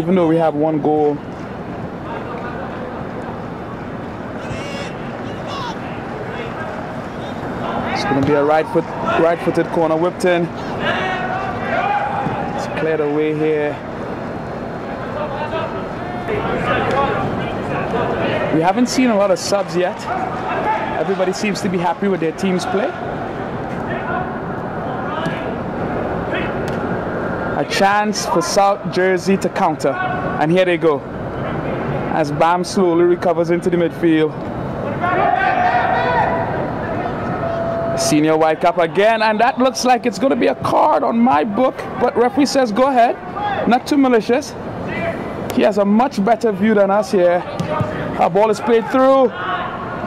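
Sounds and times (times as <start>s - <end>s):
soccer match background noise: 0.0s - 50.0s
steady background noise: 0.0s - 50.0s
distant players shouting: 3.8s - 9.8s, 10.7s - 13.2s, 15.0s - 26.8s, 34.8s - 43.8s.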